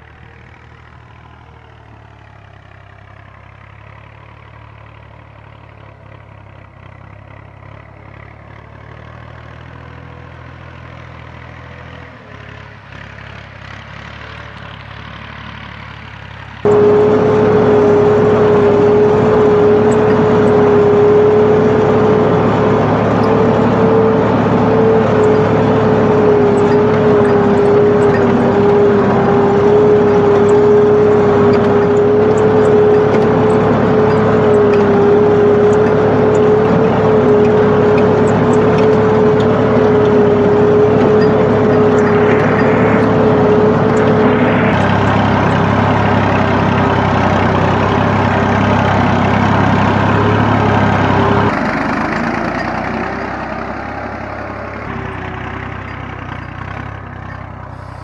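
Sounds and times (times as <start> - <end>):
tractor engine drone: 0.0 - 58.0.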